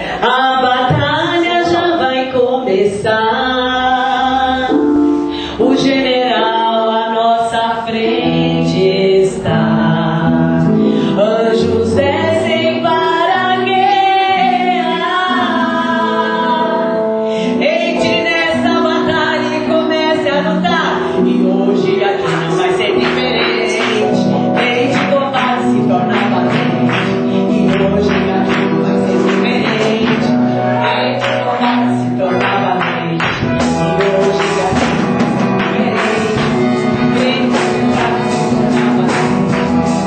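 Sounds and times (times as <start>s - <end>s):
woman singing gospel chorus: 0.0s - 4.8s, 5.6s - 39.9s
instrumental backing: 0.0s - 40.0s.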